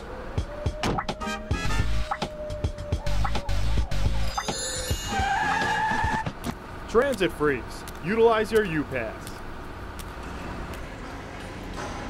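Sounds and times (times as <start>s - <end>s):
low street noise: 0.0s - 12.0s
steady high squeal: 4.1s - 6.4s.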